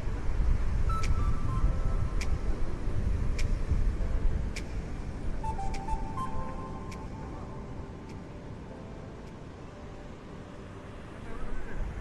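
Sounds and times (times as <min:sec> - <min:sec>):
wind buffeting microphone: 0:00.0 - 0:10.2
faint music notes: 0:00.0 - 0:12.0.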